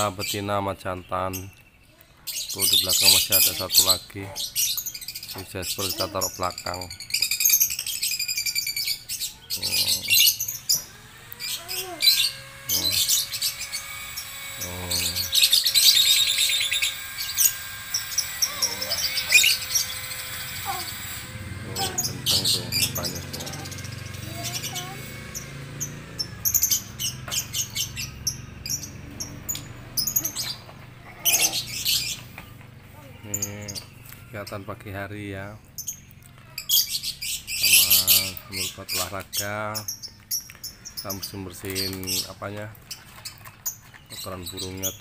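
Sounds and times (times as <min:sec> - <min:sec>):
lovebirds chattering and chirping: 0:00.0 - 0:45.0.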